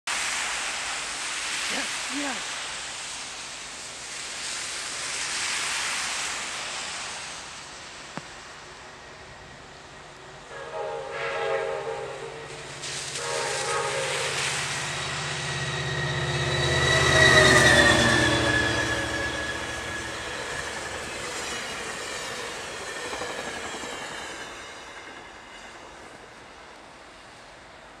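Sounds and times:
train rumble: 0.1 - 28.0
diesel locomotive engine drone: 0.2 - 28.0
train horn: 10.4 - 20.9.

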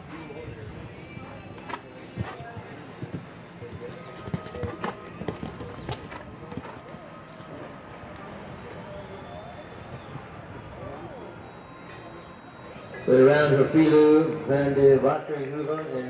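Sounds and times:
music: 0.0 - 13.2.

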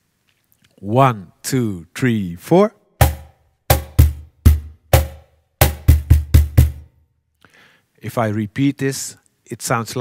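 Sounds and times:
cajon bass strokes: 3.0 - 6.9.

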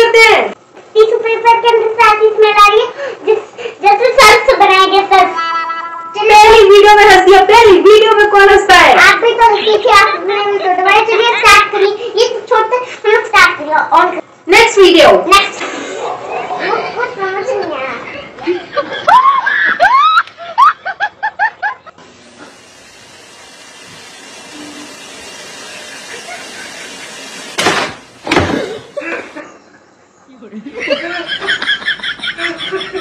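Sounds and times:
loud screaming cries: 19.1 - 20.8.

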